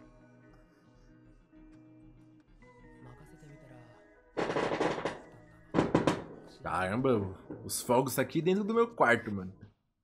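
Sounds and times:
fireworks bangs: 4.4s - 6.6s.

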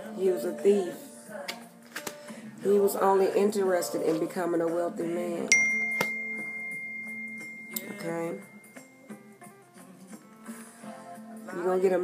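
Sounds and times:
high ringing bell tone: 5.5s - 9.5s.

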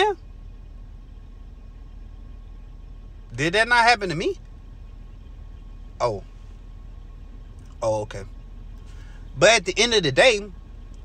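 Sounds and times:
car cabin hum: 0.0s - 11.0s.

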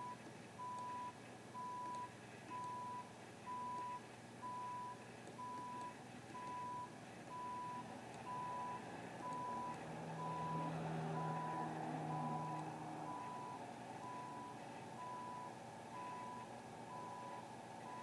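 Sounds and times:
backup alarm beeping: 0.0s - 18.0s
vehicle engine running: 8.9s - 15.1s.

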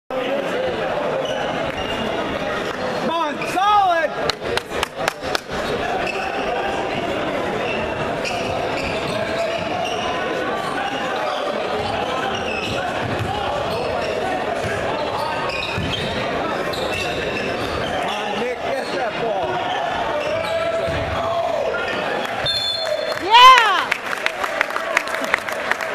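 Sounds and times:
crowd chatter in echoing gym: 0.1s - 25.9s.

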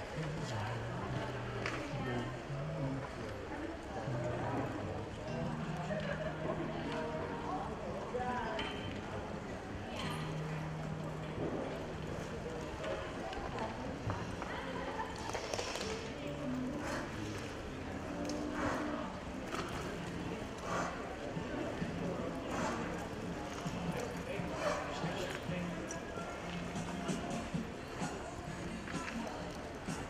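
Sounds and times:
indistinct background voices: 0.0s - 30.0s.

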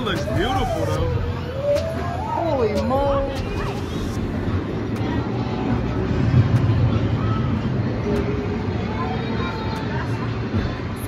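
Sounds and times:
faint voices: 0.0s - 11.0s
roller coaster rumbling on track: 0.0s - 11.0s.

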